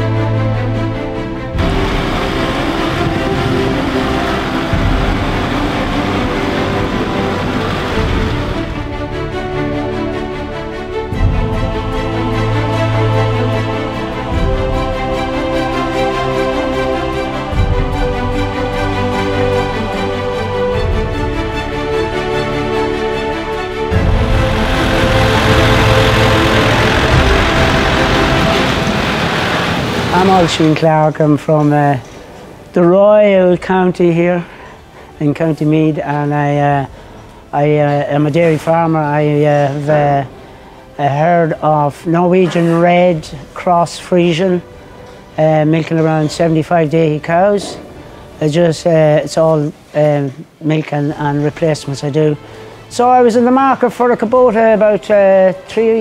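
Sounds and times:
faint music: 0.0s - 56.0s
tractor diesel engine running: 1.3s - 9.8s, 20.8s - 31.0s.

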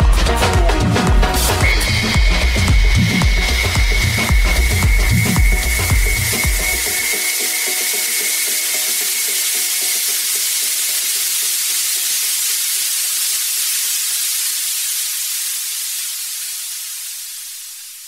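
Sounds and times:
dance music bass and beat: 0.0s - 9.4s
white-noise sweep hiss: 0.0s - 18.0s.

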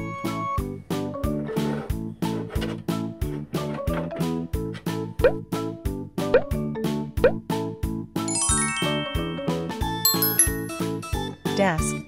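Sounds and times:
bouncy children's music: 0.0s - 12.0s
rising pop sound effects: 8.3s - 10.8s
twinkling chime run: 8.3s - 11.0s.

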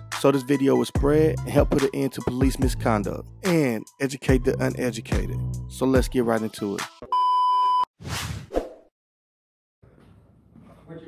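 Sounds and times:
test-tone beep: 7.1s - 7.9s.

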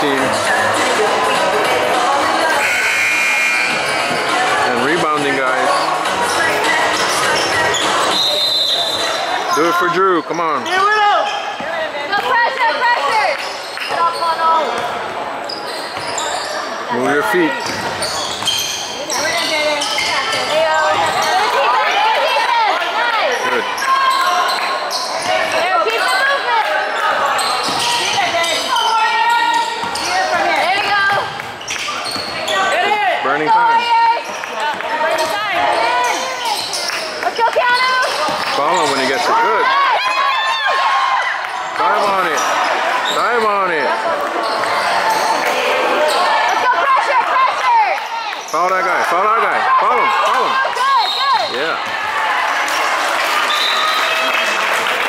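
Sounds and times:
sneakers squeaking: 0.3s - 22.5s, 23.3s - 40.6s, 41.4s - 47.6s, 49.9s - 52.0s
indistinct calls of people: 1.7s - 4.6s.

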